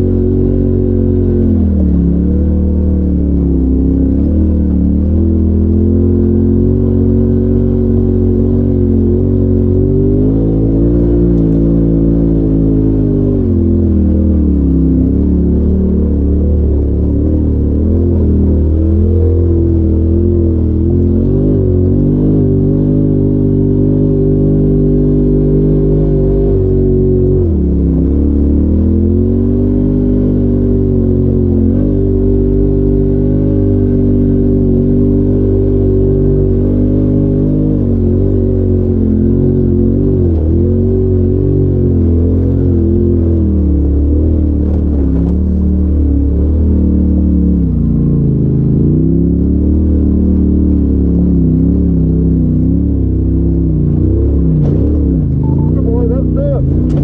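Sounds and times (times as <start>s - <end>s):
engine running under load: 50.9s - 57.0s.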